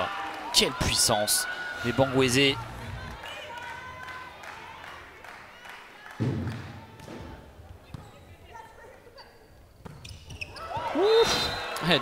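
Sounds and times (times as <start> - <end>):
hall crowd noise: 0.0 - 9.1, 10.5 - 12.0
volleyball hits in echoing hall: 6.0 - 8.9, 9.7 - 11.5.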